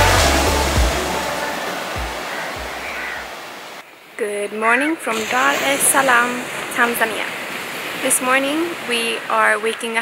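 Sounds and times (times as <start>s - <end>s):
background music: 0.0s - 3.3s
surf breaking on beach: 0.0s - 3.8s, 5.1s - 9.2s.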